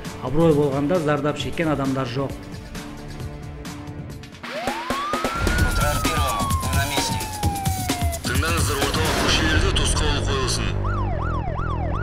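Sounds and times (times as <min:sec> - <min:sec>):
theme music with heavy beat: 0:00.0 - 0:11.2
siren wail: 0:04.4 - 0:09.0, 0:10.1 - 0:12.0.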